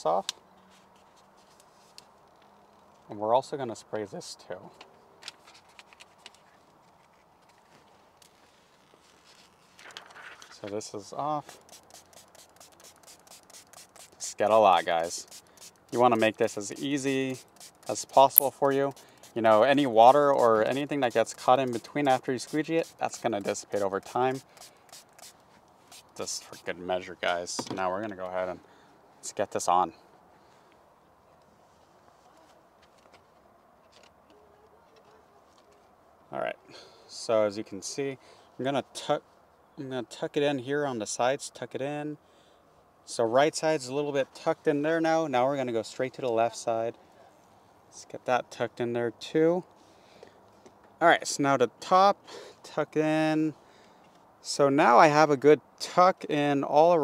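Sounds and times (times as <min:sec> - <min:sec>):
plastic film rustling: 0:05.4 - 0:10.7, 0:11.5 - 0:19.7.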